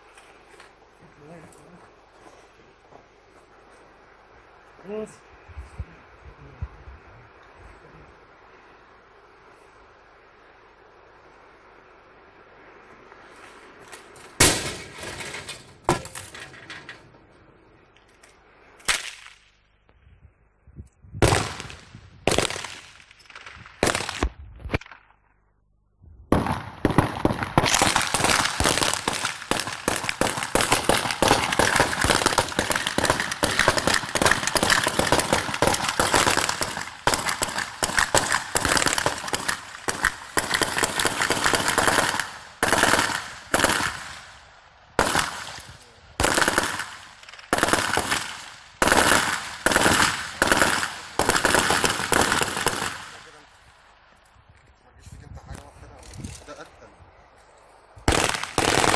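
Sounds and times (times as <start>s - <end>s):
automatic rifle fire: 14.4s - 15.1s, 21.2s - 25.0s, 26.3s - 44.2s, 45.0s - 53.4s, 58.1s - 58.9s.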